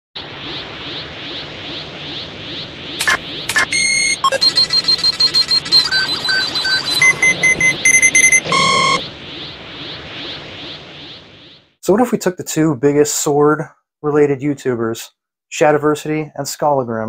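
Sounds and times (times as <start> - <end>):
pulsing rushing energy effect: 0.2 - 12.1
rapid electronic beeps: 0.5 - 11.7.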